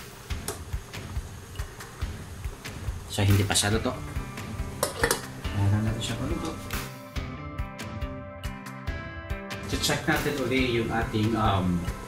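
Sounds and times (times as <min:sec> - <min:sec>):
pot at a rolling boil: 0:00.0 - 0:06.8, 0:09.7 - 0:12.0
gas burner low rumble: 0:00.0 - 0:06.9, 0:09.7 - 0:12.0.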